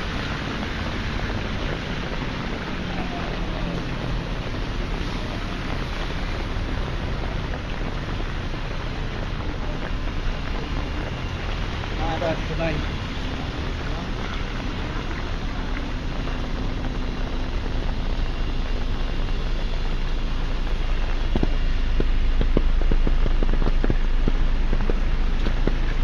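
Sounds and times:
traffic on wet road: 0.0 - 26.0.

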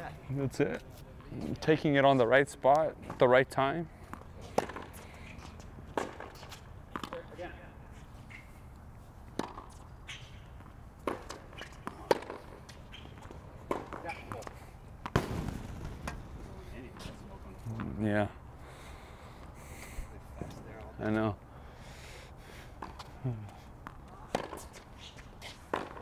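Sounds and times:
tennis rackets hitting ball: 4.0 - 8.5, 9.2 - 16.3, 23.8 - 26.0
ball bouncing on court: 9.4 - 9.8, 10.6 - 16.2, 23.8 - 24.7.

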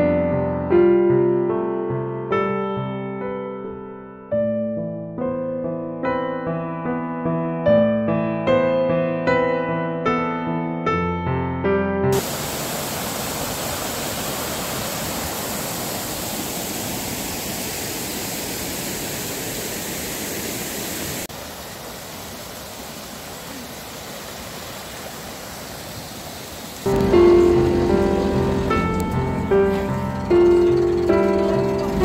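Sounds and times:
piano music: 0.0 - 12.2, 26.9 - 32.0
fast-flowing stream rushing: 12.2 - 32.0.

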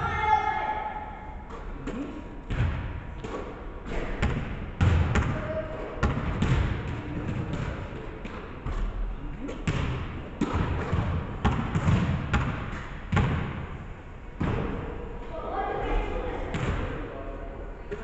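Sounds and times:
basketball bouncing on hardwood floor: 2.5 - 5.4, 6.0 - 8.4, 9.6 - 13.6.

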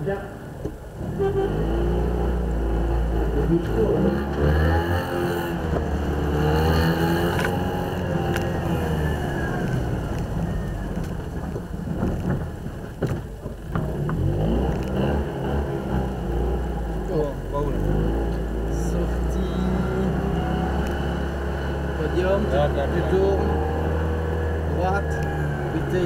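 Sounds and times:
car engine driving slowly: 0.0 - 26.0.

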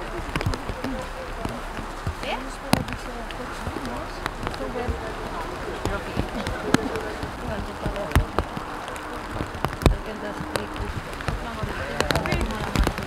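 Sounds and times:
indistinct chatter of people: 0.0 - 13.0.

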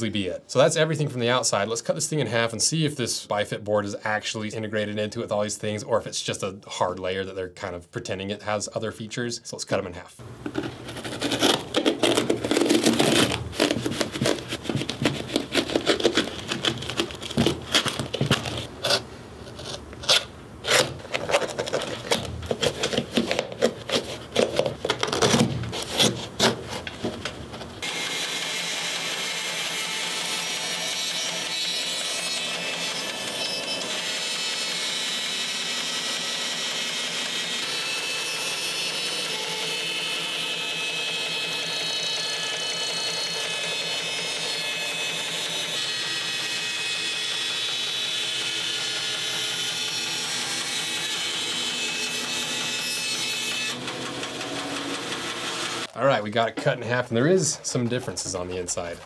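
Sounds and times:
bandsaw cutting: 10.2 - 56.0
hands rubbing leather: 10.4 - 19.8.

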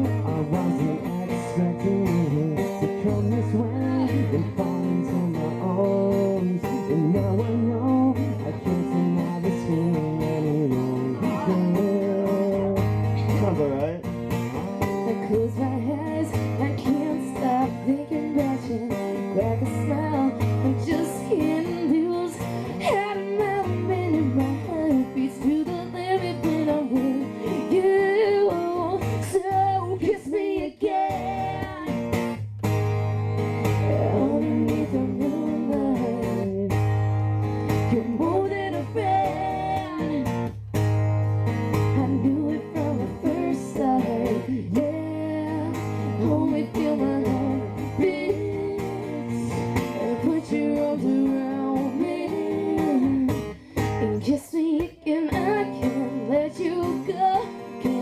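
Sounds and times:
person singing: 0.0 - 13.7, 15.0 - 32.1, 33.7 - 37.1, 37.7 - 40.5, 41.8 - 58.0
acoustic guitar strummed: 0.0 - 58.0.

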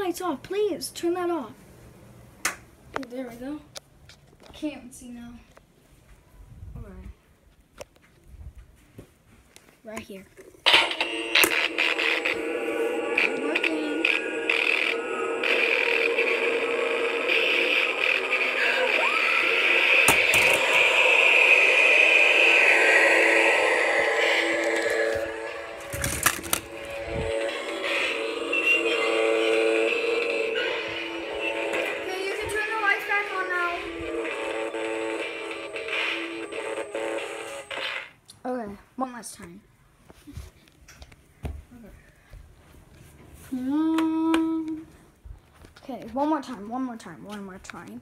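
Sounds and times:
eerie synthesized music: 10.7 - 32.8
electric crackling: 10.7 - 37.8
voice holding long note: 11.2 - 32.5.

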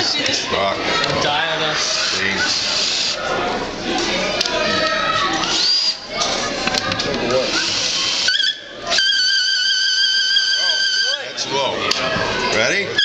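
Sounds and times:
voices: 0.0 - 13.0.

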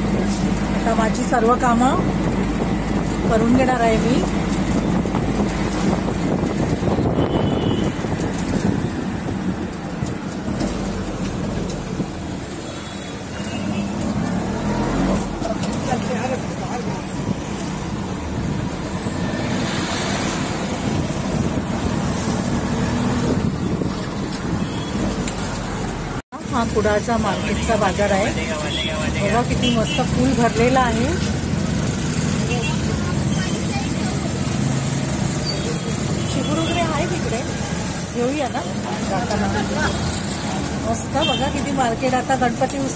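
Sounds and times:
vehicle engine and road noise: 0.0 - 42.9.

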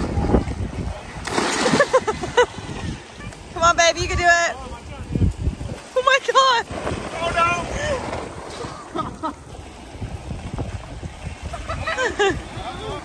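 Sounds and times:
wind rumbling on microphone: 0.0 - 13.0.

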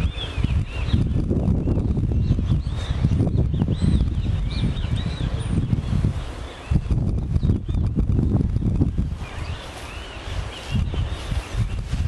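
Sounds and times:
small birds chirping: 0.0 - 12.0
wind buffeting microphone: 0.0 - 12.0
footsteps on grass: 8.8 - 12.0.

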